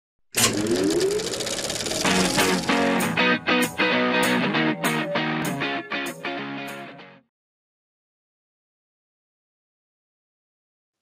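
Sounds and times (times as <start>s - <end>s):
rapid buzzing with rising tone: 0.6s - 4.3s
guitar music: 1.8s - 7.2s.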